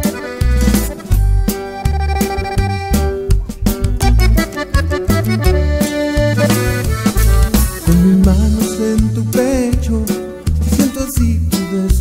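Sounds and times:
instrumental band music: 0.0s - 12.0s.

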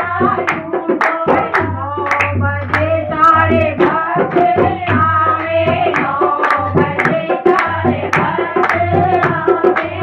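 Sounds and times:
hand drum beats: 0.0s - 10.0s
rhythmic hand clapping: 0.0s - 10.0s
women singing in unison: 0.0s - 10.0s.

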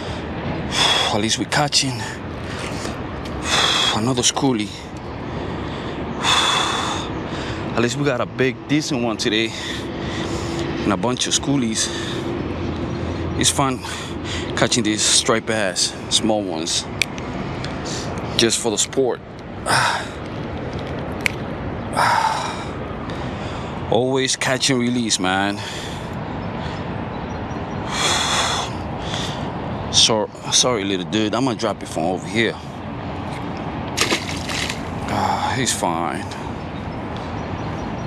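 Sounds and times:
outdoor background hiss: 0.0s - 38.0s
sharp breath through nose: 9.7s - 10.8s.

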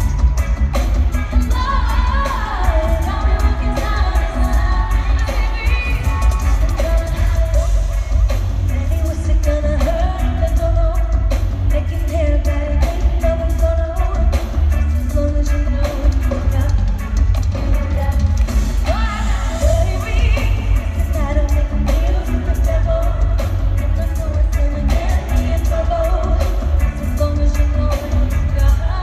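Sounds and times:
band with heavy bass: 0.0s - 29.0s
woman singing lead vocal: 0.0s - 29.0s.

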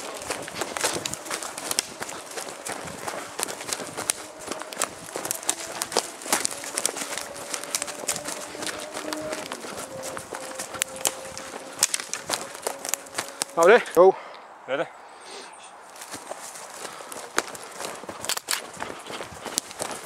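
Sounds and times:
footfalls on leaf litter: 0.0s - 14.0s, 15.9s - 20.0s
twigs cracking underfoot: 0.0s - 14.0s, 15.8s - 20.0s.

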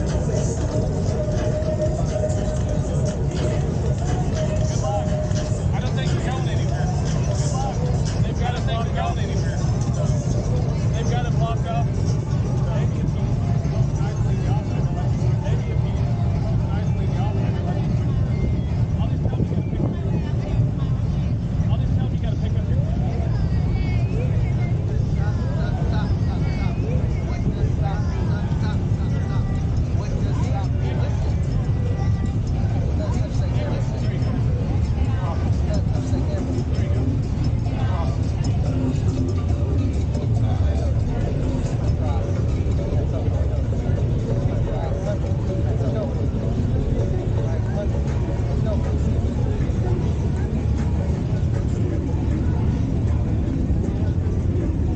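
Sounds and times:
people's voices: 0.0s - 54.9s.

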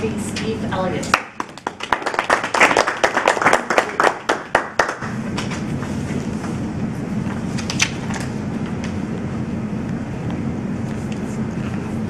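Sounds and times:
low room hum: 0.0s - 12.0s
audience clapping: 1.1s - 5.6s.

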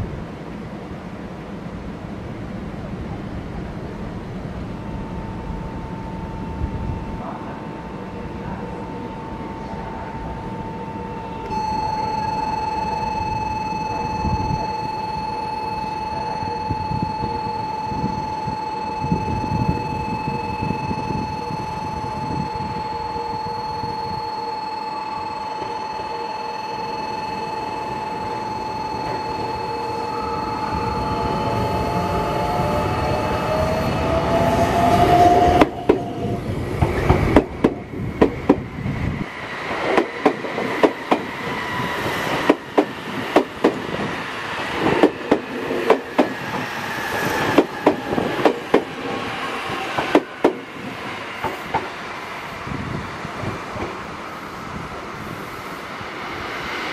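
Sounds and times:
electric train whine: 0.0s - 56.9s
train wheels knocking over rail joints: 36.8s - 38.7s, 42.4s - 44.0s, 44.8s - 46.7s, 47.5s - 49.0s.

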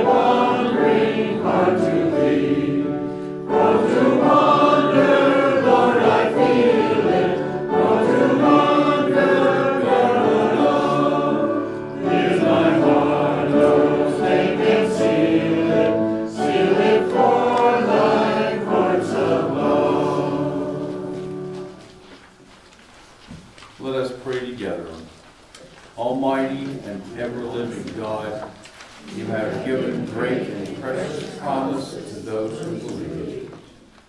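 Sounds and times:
group singing a hymn: 0.0s - 22.0s, 29.0s - 33.9s.

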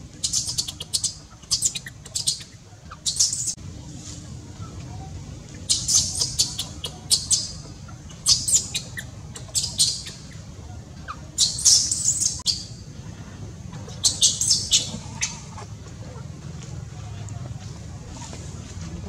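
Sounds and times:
steady low hum: 0.0s - 19.0s
high-pitched animal squeaks: 0.2s - 3.6s, 5.7s - 10.4s, 11.1s - 12.5s.

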